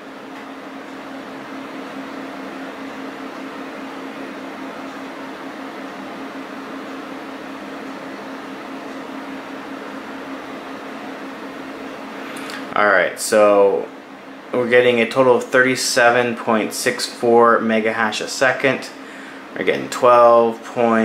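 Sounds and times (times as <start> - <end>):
computer cooling fans humming: 0.0 - 21.0.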